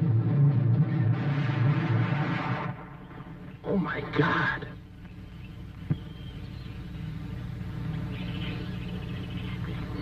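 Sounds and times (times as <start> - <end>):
timpani roll: 0.0 - 3.4
rushing noise: 0.0 - 3.6.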